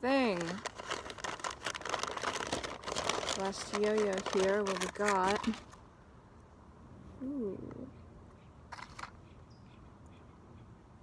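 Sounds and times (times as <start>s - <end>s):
rummaging in cardboard box: 0.2s - 5.7s.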